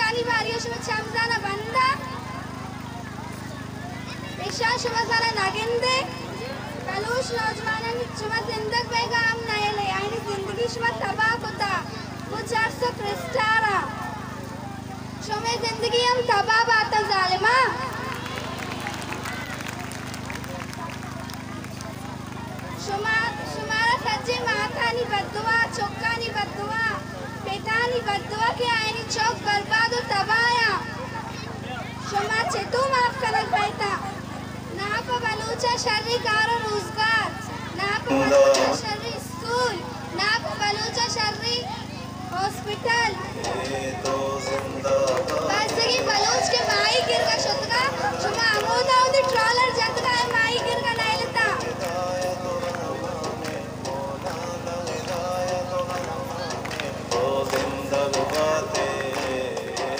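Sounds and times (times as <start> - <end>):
woman speaking over public address: 0.0 - 14.3, 14.9 - 19.4, 20.5 - 44.6, 45.4 - 52.1
steady low hum: 0.0 - 59.9
faint background voices: 1.2 - 15.3.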